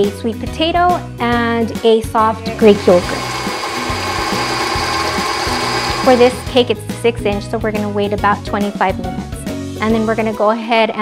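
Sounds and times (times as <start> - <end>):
stand mixer running: 2.5 - 6.7
motor whine: 2.6 - 6.6.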